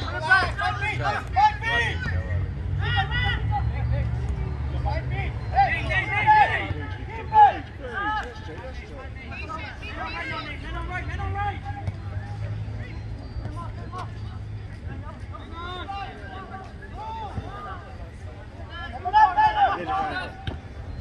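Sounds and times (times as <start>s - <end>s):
people shouting on a field: 0.0s - 12.6s, 14.9s - 21.0s.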